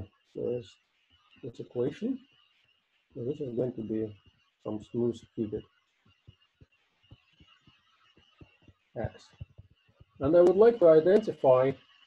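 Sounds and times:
faint steady hiss: 0:00.0 - 0:12.0
stylus tapping on a tablet: 0:05.9 - 0:11.4.

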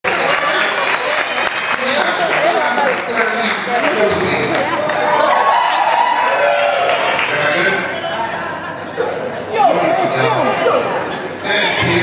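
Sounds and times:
audience clapping: 0:00.0 - 0:07.8
crowd chatter: 0:00.0 - 0:12.0.

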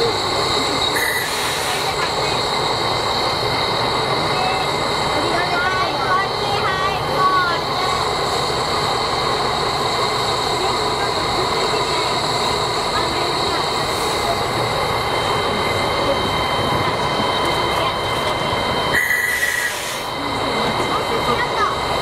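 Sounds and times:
steam locomotive hissing: 0:00.0 - 0:22.0.

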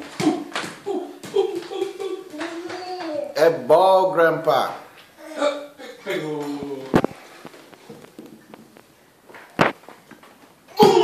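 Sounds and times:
ball bouncing on tiled floor: 0:00.0 - 0:03.2.

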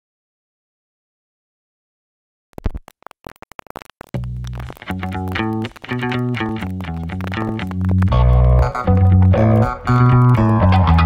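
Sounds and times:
vinyl crackles and pops: 0:02.6 - 0:11.0.

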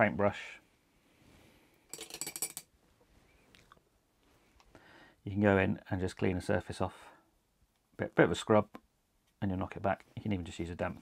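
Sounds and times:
small hard objects clicking: 0:01.9 - 0:02.7.

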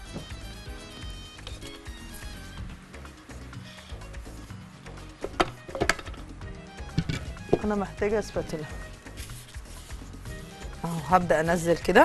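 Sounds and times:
soft background music: 0:00.0 - 0:12.0
metal mixer bowl knocking: 0:06.9 - 0:07.8.

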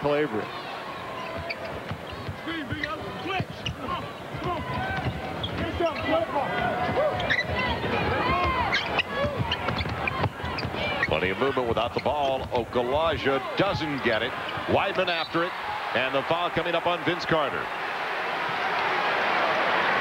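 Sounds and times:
arena crowd noise: 0:00.0 - 0:20.0
sneakers squeaking: 0:00.6 - 0:15.7
basketball bouncing: 0:01.2 - 0:14.8.

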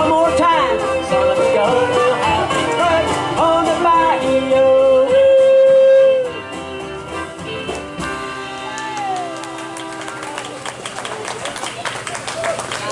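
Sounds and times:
country band playing: 0:00.0 - 0:12.9.

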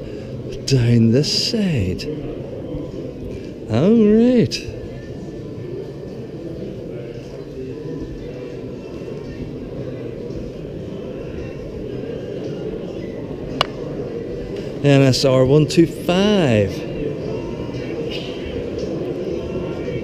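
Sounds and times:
chatter of many people: 0:00.0 - 0:20.0.

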